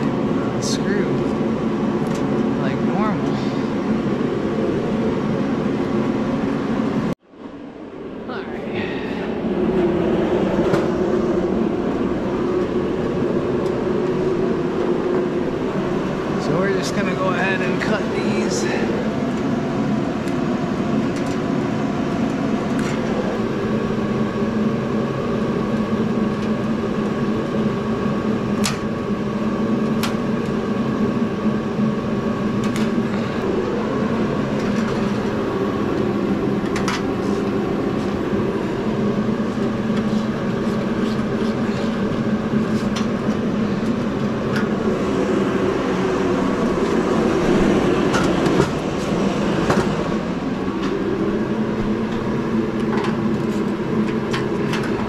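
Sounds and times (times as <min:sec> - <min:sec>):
heater humming: 0:00.0 - 0:55.0.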